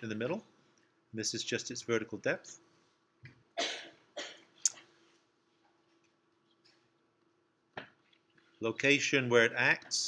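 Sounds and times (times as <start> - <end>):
man coughing: 3.6 - 4.5.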